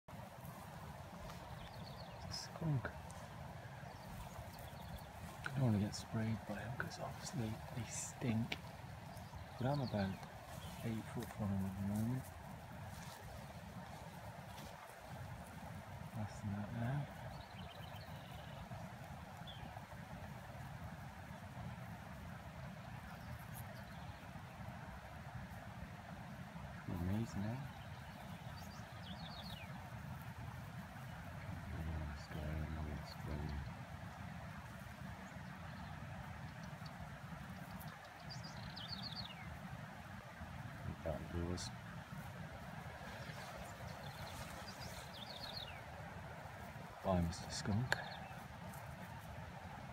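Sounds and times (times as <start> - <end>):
songbird singing: 0.0 - 49.9
wind hiss: 0.1 - 49.9.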